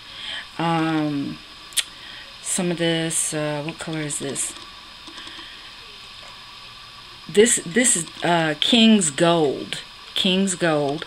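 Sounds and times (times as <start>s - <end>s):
faint steady hiss: 0.0s - 11.0s.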